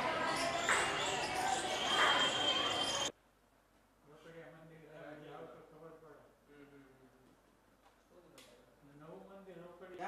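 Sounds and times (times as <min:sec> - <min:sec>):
indistinct voices: 0:00.0 - 0:03.1.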